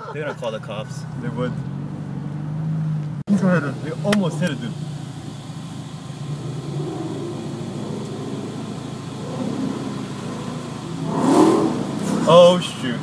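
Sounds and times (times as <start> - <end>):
muffled car engine revving: 0.0 - 13.0.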